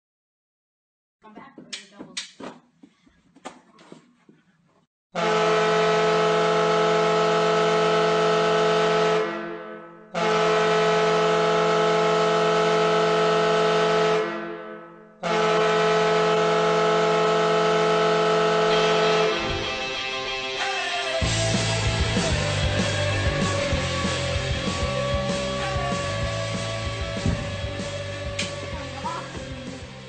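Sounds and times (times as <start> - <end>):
air horn blasts: 5.1 - 29.9.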